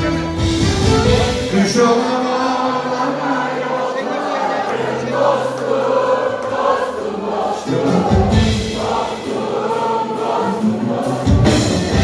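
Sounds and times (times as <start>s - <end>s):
live band music: 0.0s - 12.0s
voices singing: 0.9s - 12.0s
heavy bass and drum beat: 10.6s - 12.0s.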